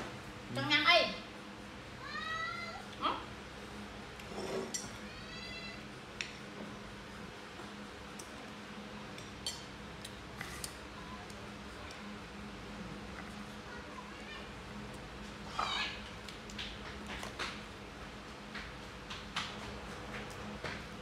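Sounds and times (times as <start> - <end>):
spoon clinking against dish: 9.2 - 9.7.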